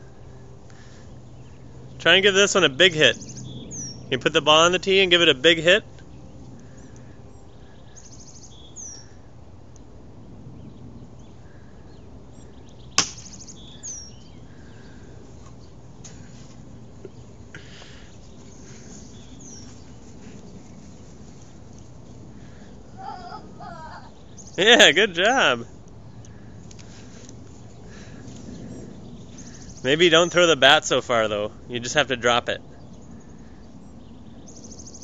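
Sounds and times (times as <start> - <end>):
small birds chirping: 0.0 - 35.0
plastic toy bat hitting ball: 13.0 - 13.4.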